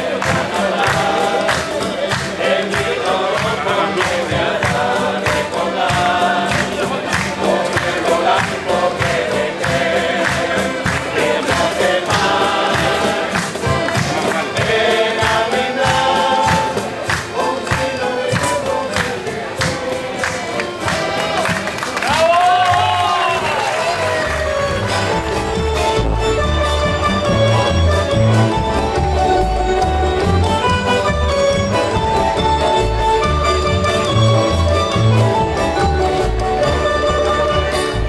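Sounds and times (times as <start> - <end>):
group singing: 0.0 - 22.2, 32.4 - 38.0
accordion: 0.0 - 22.3, 23.6 - 38.0
conga drums: 0.0 - 38.0
strummed guitars: 0.0 - 38.0.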